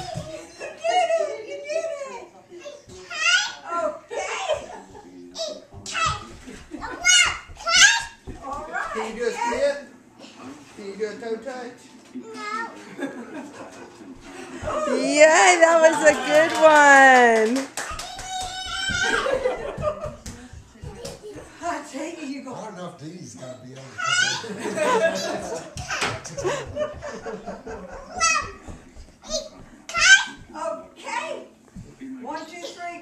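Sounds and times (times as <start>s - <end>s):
faint background music: 0.0s - 17.8s, 19.0s - 33.0s.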